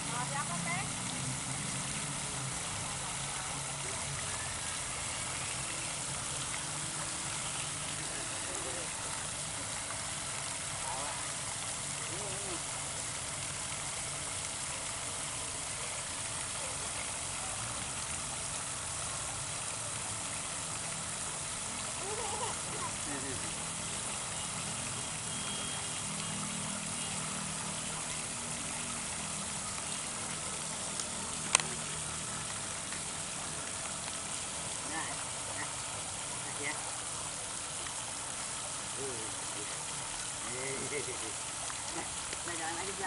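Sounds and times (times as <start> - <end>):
fountain water splashing: 0.0 - 43.0.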